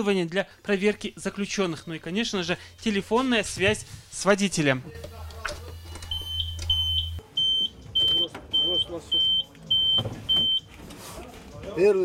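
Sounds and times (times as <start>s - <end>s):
high electronic alarm beeps: 5.8s - 10.7s.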